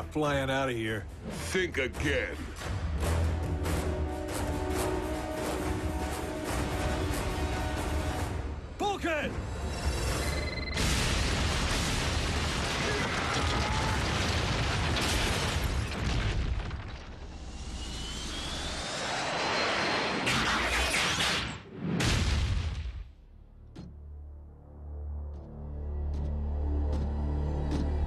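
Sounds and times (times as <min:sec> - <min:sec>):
dramatic score music: 0:00.0 - 0:11.0, 0:23.5 - 0:28.0
cartoon explosions and booms: 0:10.6 - 0:18.0, 0:20.2 - 0:23.2
rising whine: 0:17.3 - 0:20.3.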